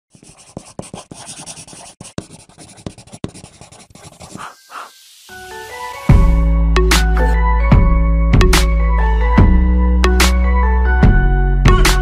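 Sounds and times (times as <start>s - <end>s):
crackling scratching paper: 0.1s - 4.7s.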